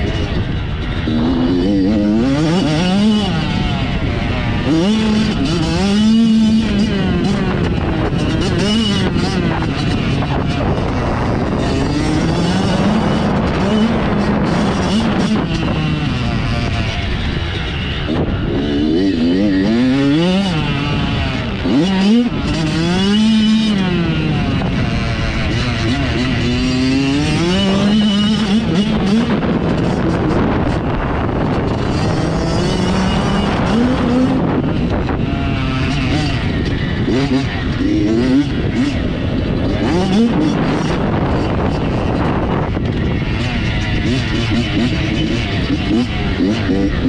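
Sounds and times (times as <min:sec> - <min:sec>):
dirt bike engine revving: 0:00.0 - 0:47.0.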